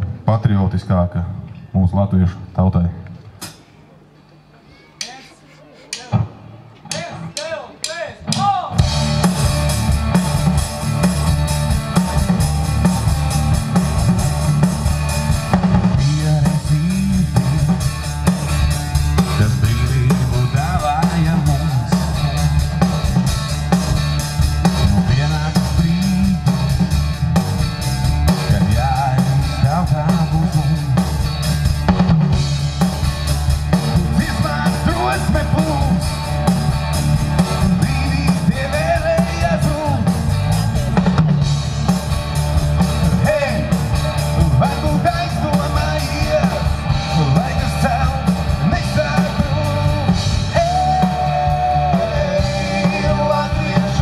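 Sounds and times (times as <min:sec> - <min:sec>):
live rock band playing: 0:04.7 - 0:54.0.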